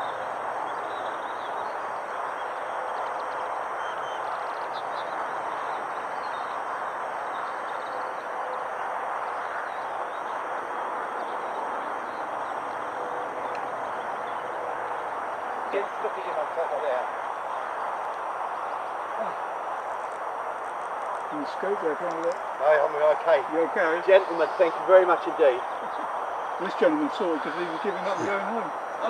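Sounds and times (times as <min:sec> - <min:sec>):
distant traffic hum: 0:00.0 - 0:29.0
faint bird calls: 0:11.0 - 0:20.1, 0:24.1 - 0:29.0.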